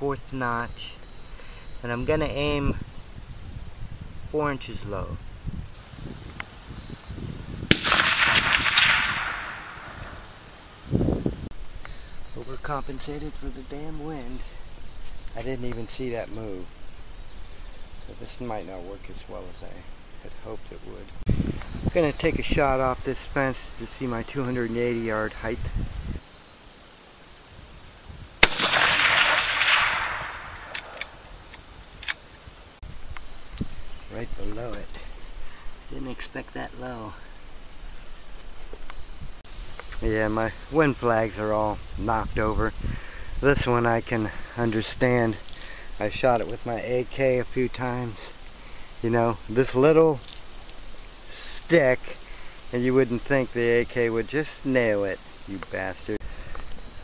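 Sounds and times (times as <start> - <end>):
rifle shot with echo: 7.7 - 10.3, 28.4 - 31.3
faint clicks: 30.6 - 32.3.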